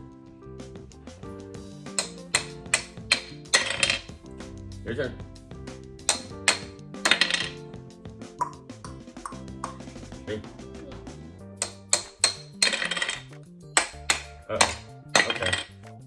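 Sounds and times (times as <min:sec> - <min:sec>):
background music: 0:00.0 - 0:16.0
toy hammers tapping plastic: 0:01.9 - 0:04.1, 0:06.0 - 0:07.6, 0:11.6 - 0:15.7.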